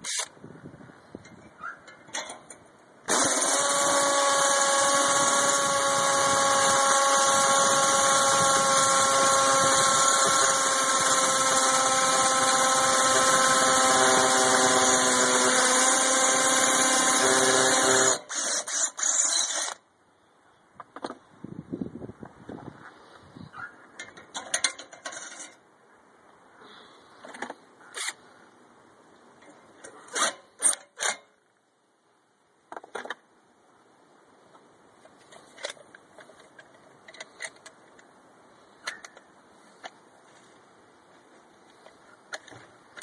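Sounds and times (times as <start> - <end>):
electric drill boring into brick: 3.1 - 19.8.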